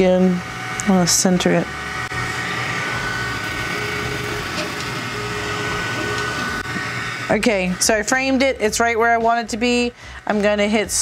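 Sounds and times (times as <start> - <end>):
faint motor tone: 0.0 - 11.0
laser engraver fan hum: 0.0 - 11.0.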